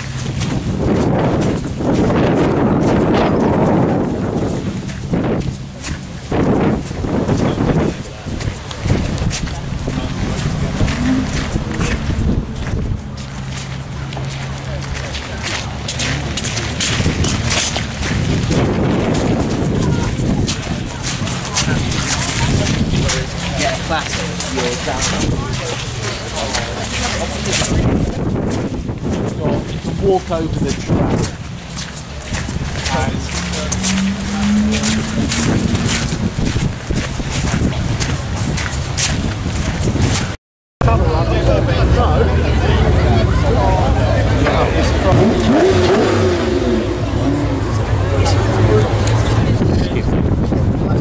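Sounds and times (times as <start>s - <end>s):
footsteps crunching on wet gravel: 0.0s - 40.4s
wind buffeting microphone: 0.0s - 40.4s, 41.3s - 51.0s
indistinct voices: 0.0s - 51.0s
low rumble: 0.0s - 51.0s.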